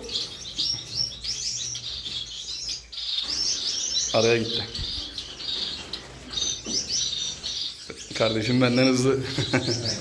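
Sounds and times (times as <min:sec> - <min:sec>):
finches chirping: 0:00.0 - 0:10.0.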